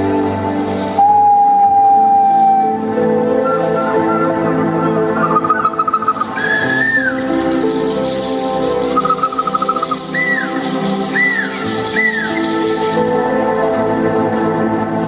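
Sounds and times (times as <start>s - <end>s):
sustained music chords: 0.0s - 15.0s
high whistled trills: 0.8s - 15.0s
short arching chirps: 5.1s - 12.9s.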